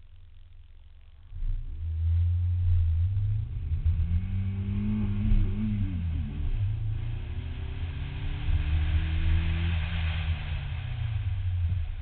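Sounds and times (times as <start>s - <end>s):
car engine accelerating hard: 1.3s - 12.0s.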